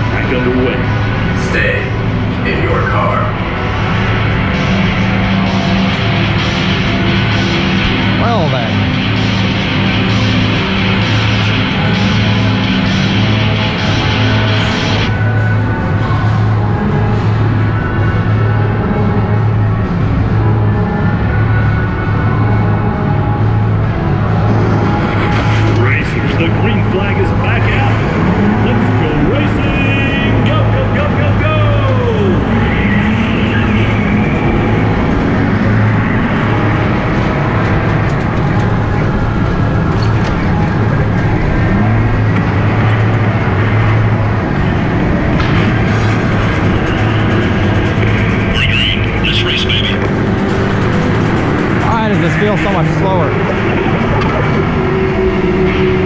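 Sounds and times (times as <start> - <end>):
go-kart engine: 0.0 - 56.0
loud music: 0.0 - 56.0
steady low hum: 0.0 - 56.0.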